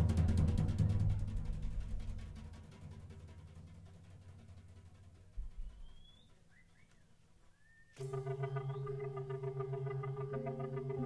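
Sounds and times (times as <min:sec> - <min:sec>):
high sliding chirp-like tones: 0:07.6 - 0:11.0
organ bass and drums playing: 0:08.0 - 0:11.0.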